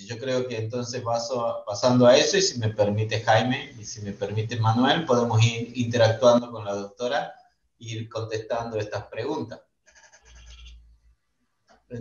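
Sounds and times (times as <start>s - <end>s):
man speaking: 0.0s - 9.6s.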